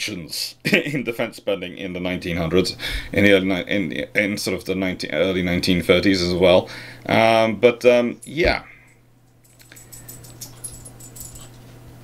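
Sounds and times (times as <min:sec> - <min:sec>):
steady low hum: 0:00.0 - 0:12.0
faint high clinks: 0:08.2 - 0:11.8.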